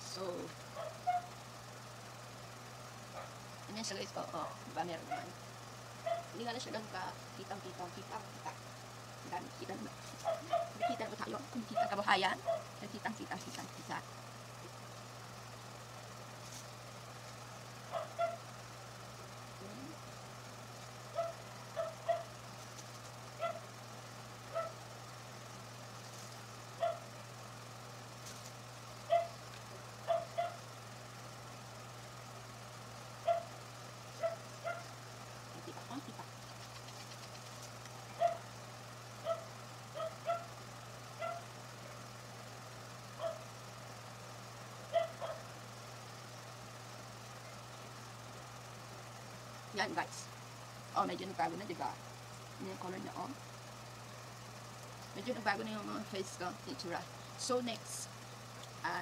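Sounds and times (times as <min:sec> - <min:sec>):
steady low hum: 0:00.0 - 0:59.0
dog barking: 0:00.8 - 0:01.4, 0:03.1 - 0:03.4, 0:05.0 - 0:05.4, 0:06.0 - 0:06.4, 0:08.1 - 0:08.6, 0:10.2 - 0:12.8, 0:17.9 - 0:18.5, 0:21.1 - 0:22.4, 0:23.4 - 0:23.7, 0:24.5 - 0:24.8, 0:26.8 - 0:27.1, 0:29.1 - 0:29.4, 0:30.0 - 0:30.7, 0:33.2 - 0:33.6, 0:34.2 - 0:35.0, 0:38.1 - 0:38.5, 0:39.2 - 0:40.6, 0:41.2 - 0:41.5, 0:43.2 - 0:43.5, 0:44.9 - 0:45.5.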